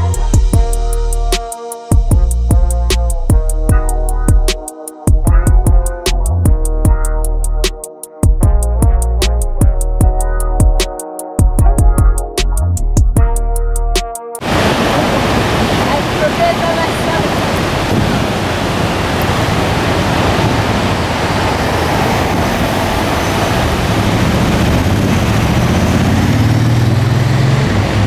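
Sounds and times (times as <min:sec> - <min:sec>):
waterfall rushing: 0:14.4 - 0:28.0.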